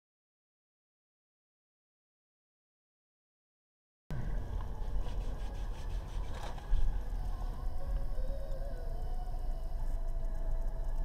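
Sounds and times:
low car rumble from cabin: 0:04.1 - 0:11.0.

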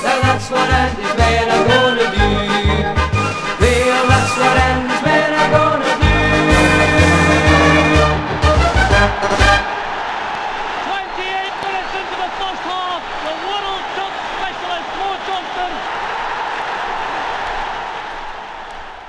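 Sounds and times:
crowd noise: 0:06.5 - 0:19.0
crowd shouting calls: 0:06.5 - 0:19.0.

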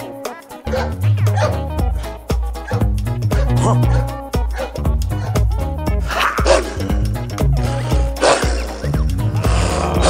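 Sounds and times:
background music with steady beat: 0:00.0 - 0:10.0
dog bark sound effect: 0:00.7 - 0:01.8, 0:02.6 - 0:05.4, 0:06.1 - 0:06.9, 0:08.0 - 0:08.9.

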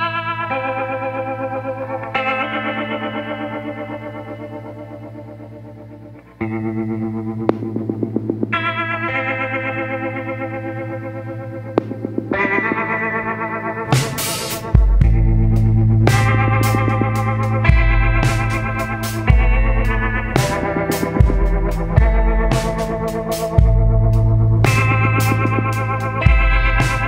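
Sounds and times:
sustained effects-laden chords: 0:00.0 - 0:27.0.

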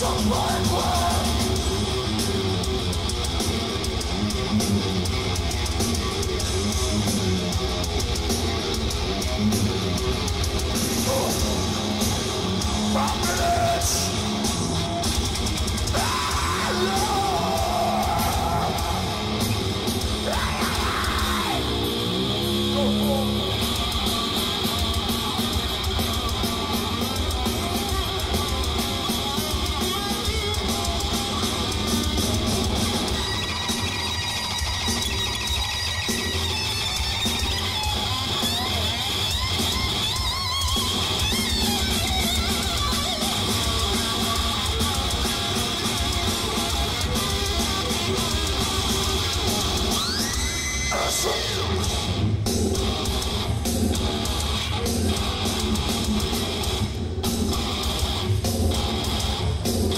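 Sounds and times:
heavy metal band playing: 0:00.0 - 0:59.9.

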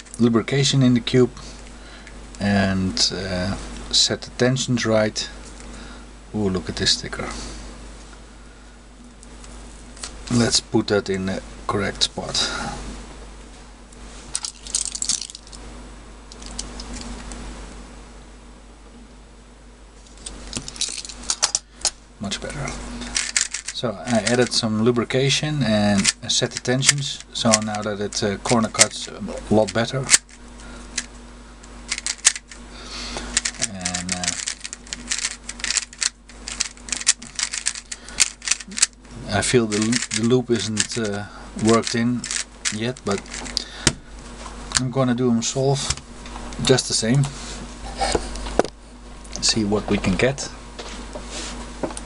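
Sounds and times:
puzzle cube plastic clicks: 0:23.2 - 0:24.6, 0:31.9 - 0:32.6, 0:33.4 - 0:39.0, 0:39.7 - 0:43.6
plastic puzzle cube clicking: 0:33.4 - 0:38.9.

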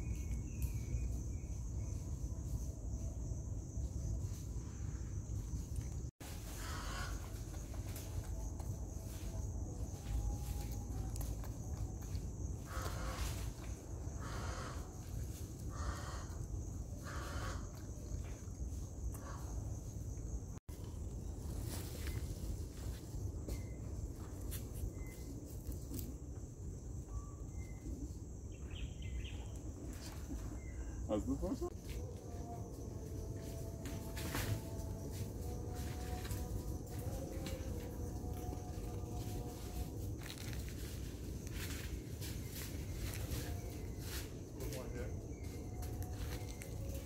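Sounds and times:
high insect drone: 0:00.0 - 0:47.0
crunching of dry leaf litter: 0:33.6 - 0:47.0.

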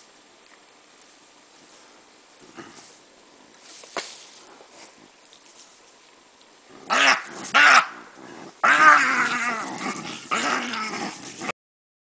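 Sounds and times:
baboon cries: 0:08.6 - 0:11.0.

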